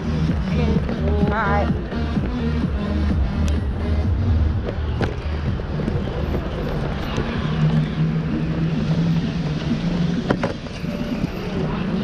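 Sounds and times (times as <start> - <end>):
city street noise: 0.0 - 12.0
vehicle engine humming: 0.0 - 12.0.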